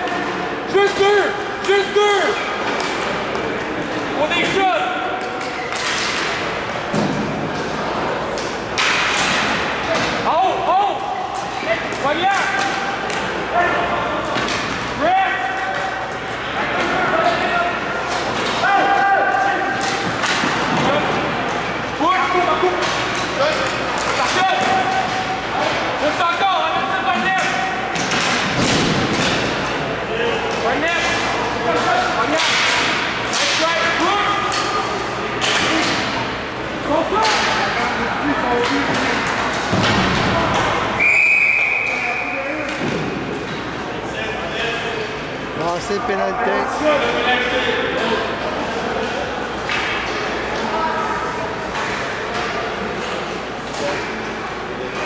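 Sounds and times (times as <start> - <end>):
players shouting: 14.9 - 27.9
referee whistle blast: 41.0 - 42.4.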